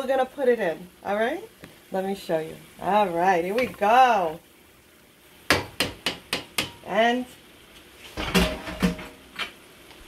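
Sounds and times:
metal cookware clanking: 8.2s - 9.2s.

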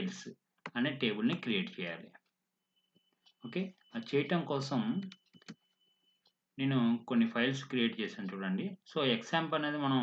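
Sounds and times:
man speaking: 0.0s - 2.3s, 3.4s - 5.2s
faint steady high whine: 0.0s - 10.0s.

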